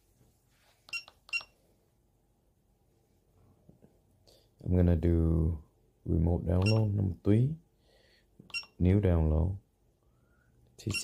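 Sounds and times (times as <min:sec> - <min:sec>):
short high beeps: 0:06.6 - 0:06.9.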